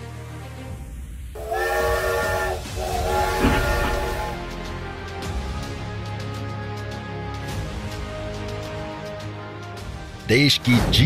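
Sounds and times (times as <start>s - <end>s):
steam hissing: 1.4s - 4.4s
steam locomotive whistle: 1.4s - 4.7s.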